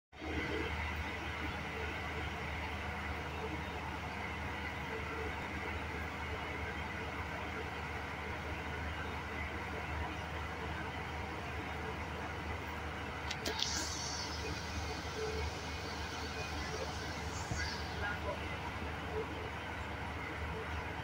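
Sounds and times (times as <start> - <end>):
washing machine hum: 0.2 - 21.0.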